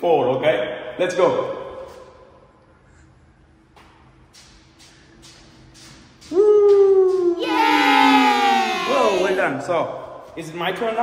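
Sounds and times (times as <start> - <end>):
person squealing excitedly: 7.4 - 9.4.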